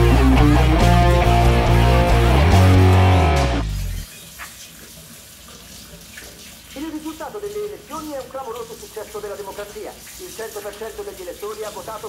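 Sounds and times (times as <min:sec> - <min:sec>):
dishes being washed: 0:04.1 - 0:12.0.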